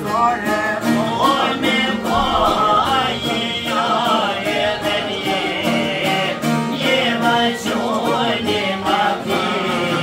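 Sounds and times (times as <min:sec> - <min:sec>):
man singing: 0:00.0 - 0:10.0
plucked lutes strumming: 0:00.0 - 0:10.0.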